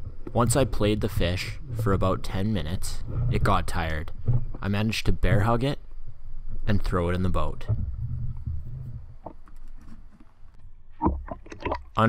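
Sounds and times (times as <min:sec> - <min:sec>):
water sloshing and splashing: 0:00.0 - 0:05.5, 0:06.5 - 0:12.0.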